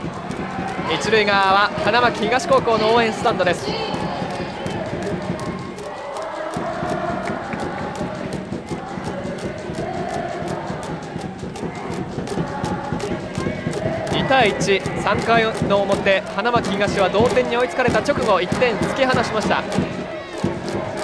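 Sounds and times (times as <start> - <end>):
crowd chanting: 0.0 - 21.0
music with rhythmic beat: 0.0 - 21.0.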